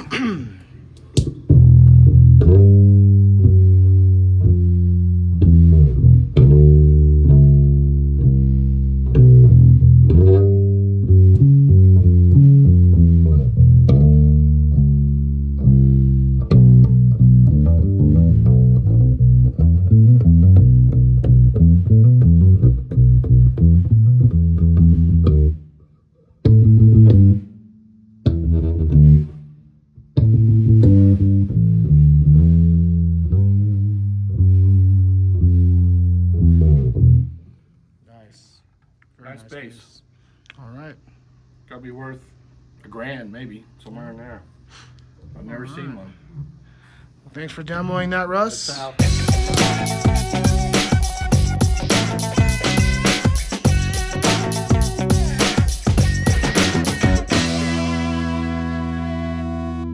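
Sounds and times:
electric bass line: 1.1 - 25.8, 26.4 - 37.6, 49.0 - 59.9.

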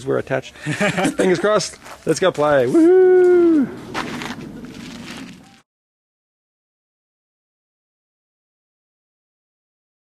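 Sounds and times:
faint background noise: 0.0 - 5.6.

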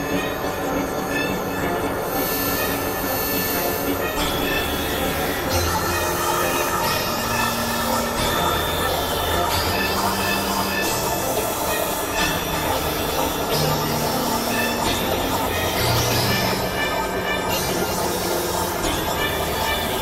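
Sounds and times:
harsh synthesizer noise: 0.0 - 20.0
squealing synthesizer tones: 0.0 - 20.0.

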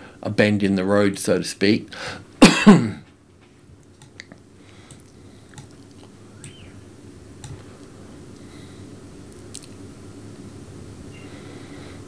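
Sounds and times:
man coughing: 2.0 - 3.1.

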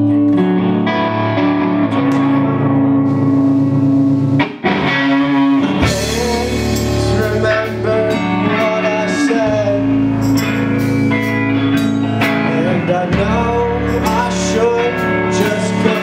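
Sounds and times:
electric guitar: 0.0 - 16.0
live rock band playing: 0.0 - 16.0.

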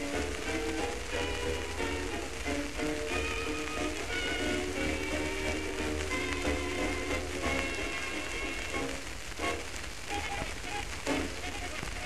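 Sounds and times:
hissy crackling surface noise: 0.0 - 12.0.

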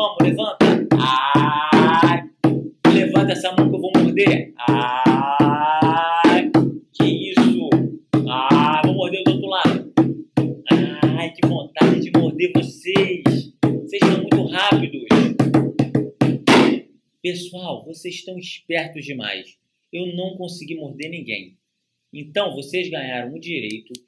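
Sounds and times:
music with steady beat: 0.0 - 17.0.

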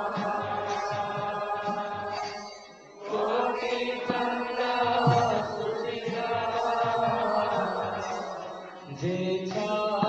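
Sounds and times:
low repeated beats: 0.0 - 10.0
musical accompaniment: 0.0 - 10.0
voices singing a chant: 0.0 - 10.0.

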